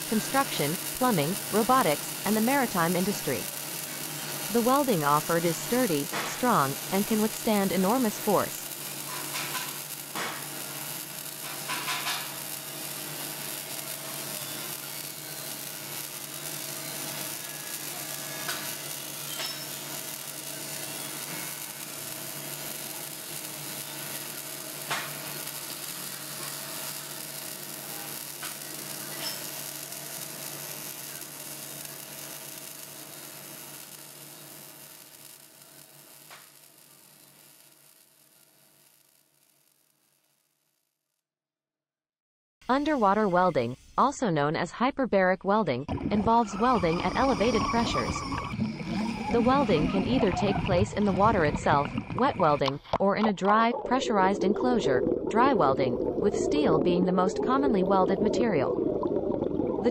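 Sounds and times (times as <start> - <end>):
sharp crackles: 0.0 - 40.4, 45.9 - 54.2
welding arc sizzling: 0.0 - 40.8, 42.6 - 44.2, 45.8 - 59.9.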